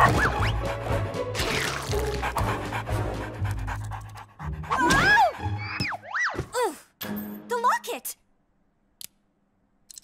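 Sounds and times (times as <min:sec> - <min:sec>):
background music: 0:00.0 - 0:08.2
cartoon dog panting: 0:01.9 - 0:05.6.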